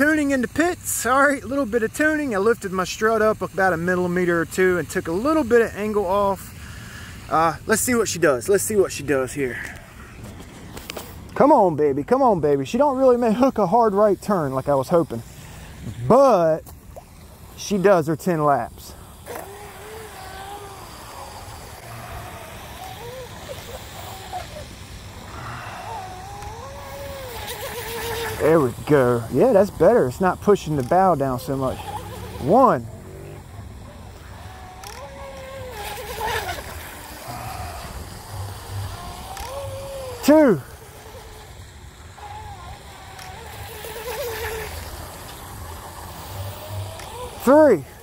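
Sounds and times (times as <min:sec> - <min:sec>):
small electric motor whine: 0:00.0 - 0:11.6, 0:12.2 - 0:48.0.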